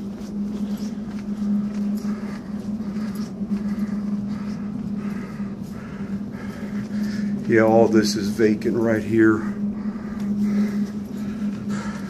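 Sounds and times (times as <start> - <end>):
footsteps on carpet: 0.0 - 12.0
steady low hum: 0.0 - 12.0.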